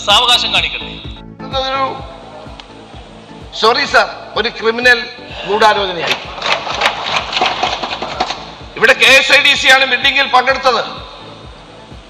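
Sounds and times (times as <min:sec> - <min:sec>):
general hubbub: 0:01.5 - 0:11.2
people thumping desks: 0:06.0 - 0:08.8.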